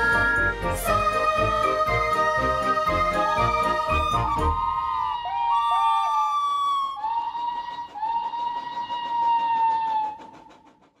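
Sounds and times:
steam locomotive whistle: 0:00.0 - 0:10.7
locomotive fast even beat: 0:00.0 - 0:11.0.

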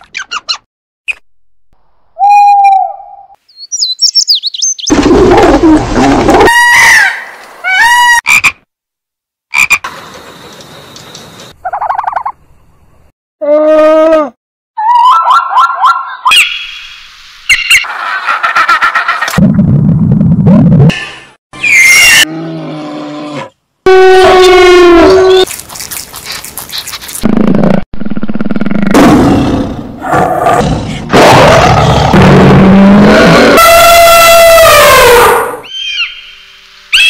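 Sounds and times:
animal calls and cries: 0:14.8 - 0:16.7, 0:21.6 - 0:23.5, 0:33.4 - 0:37.0.

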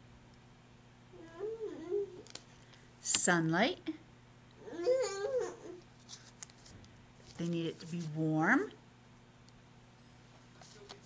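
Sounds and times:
young child whining: 0:01.2 - 0:02.3, 0:04.6 - 0:05.8.

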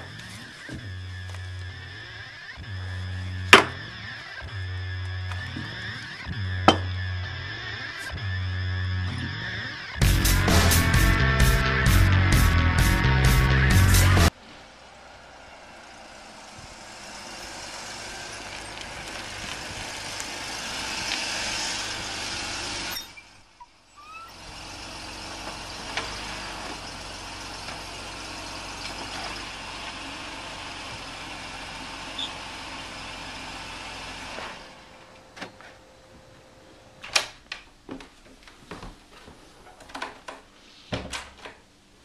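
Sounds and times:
car approaching: 0:00.0 - 0:37.1
car idling: 0:00.0 - 0:38.5.

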